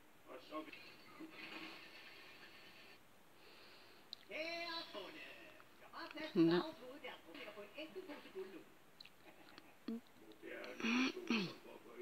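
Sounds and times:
person's voice: 6.0 - 6.8.

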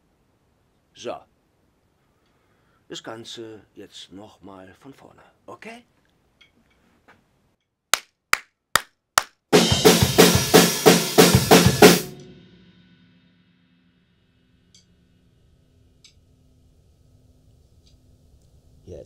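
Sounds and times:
acoustic drum kit playing: 9.5 - 12.6
faint low hum: 13.8 - 19.0.

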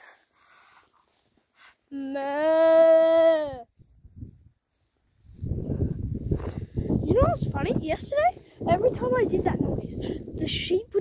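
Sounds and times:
wind buffeting microphone: 3.7 - 4.6, 5.2 - 11.0.

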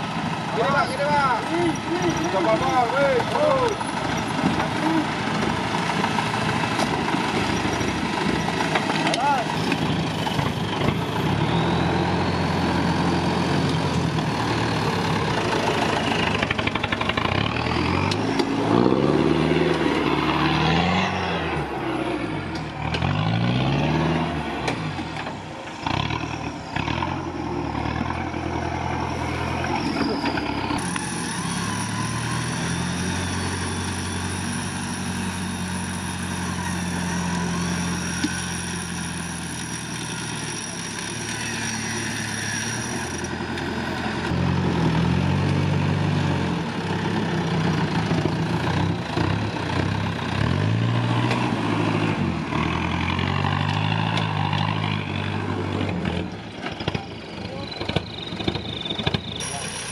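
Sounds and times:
off-road engine revving: 0.0 - 59.9.

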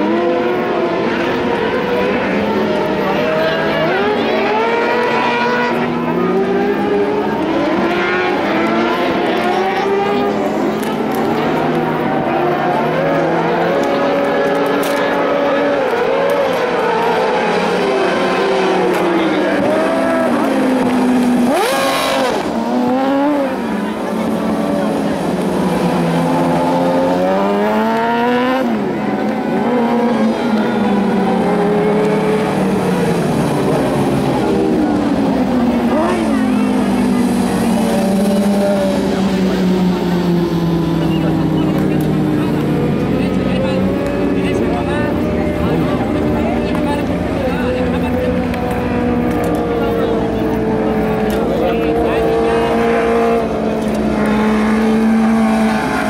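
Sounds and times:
racing buggy engines revving: 0.0 - 56.0.

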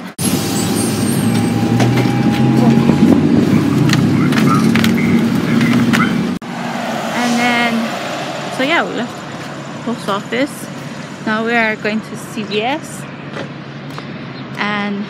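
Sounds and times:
bus engine idling: 0.0 - 14.0
outdoor ambience: 0.0 - 15.0
high warbling sound: 6.4 - 10.0.

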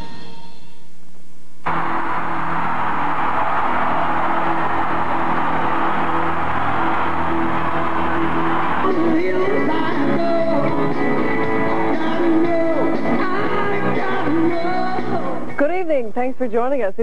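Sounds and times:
rock band sustained chord: 1.7 - 15.1
crowd cheering: 1.7 - 15.5.

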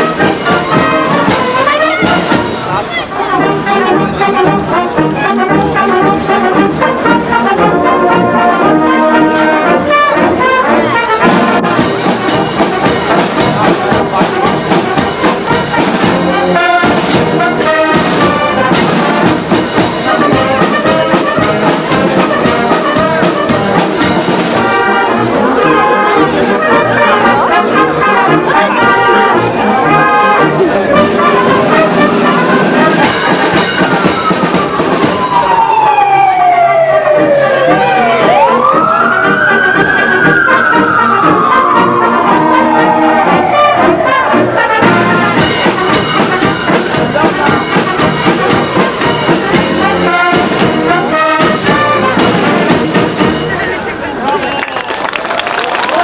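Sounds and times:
sliding brass tones: 0.0 - 54.2
brass band playing: 0.0 - 56.0.

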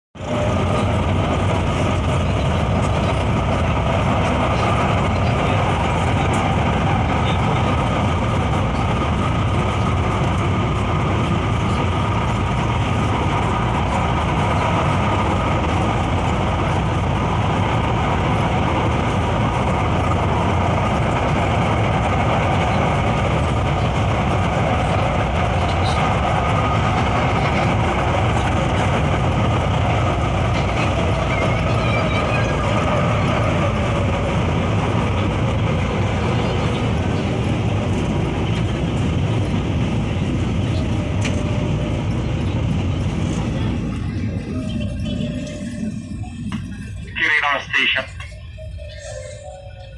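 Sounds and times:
train wheels on rails: 0.2 - 49.9.

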